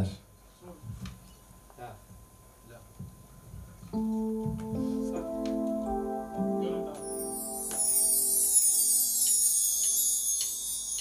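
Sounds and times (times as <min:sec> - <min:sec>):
light plucked notes: 0:04.0 - 0:11.0.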